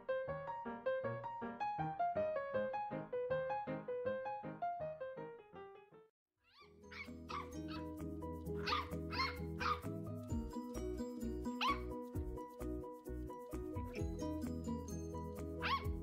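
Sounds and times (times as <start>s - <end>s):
piano music: 0.0s - 6.1s, 6.8s - 16.0s
puppy yipping barks: 6.5s - 7.9s, 8.6s - 9.9s, 11.6s - 11.9s, 15.6s - 16.0s.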